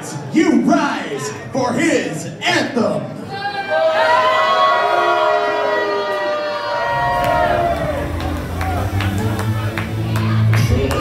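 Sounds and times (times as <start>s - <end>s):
siren-like wail sliding downward: 4.8s - 9.4s
entrance music over speakers: 6.9s - 11.0s.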